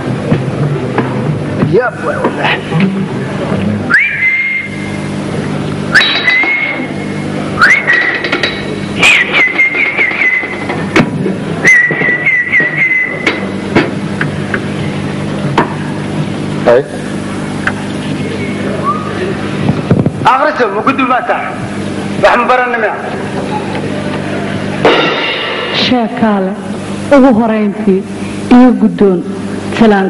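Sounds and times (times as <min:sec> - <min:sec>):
steady low hum: 0:00.0 - 0:30.0
person whistling with trills: 0:03.9 - 0:04.9, 0:05.9 - 0:06.9, 0:07.6 - 0:08.3, 0:09.0 - 0:10.7, 0:11.6 - 0:13.5, 0:18.8 - 0:19.2.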